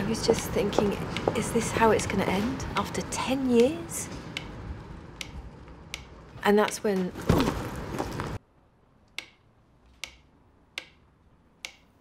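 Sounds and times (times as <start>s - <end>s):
metronome ticking: 9.2s - 12.0s.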